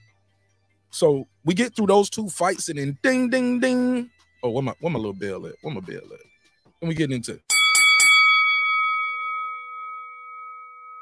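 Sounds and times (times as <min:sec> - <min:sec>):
boxing bell ringing: 0:07.5 - 0:11.0.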